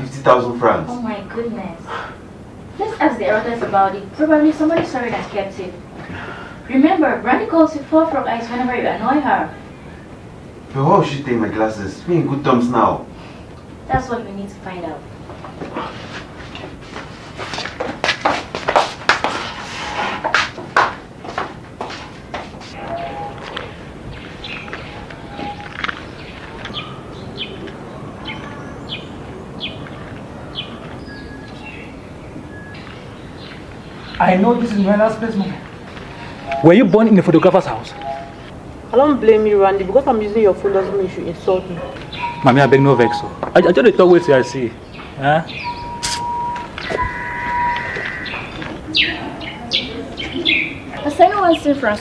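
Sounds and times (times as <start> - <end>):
outdoor background hiss: 0.0 - 52.0
bird chirping: 22.7 - 35.4, 36.1 - 52.0
bird chirps falling: 41.9 - 50.8
bird whistle-like note: 45.6 - 48.7.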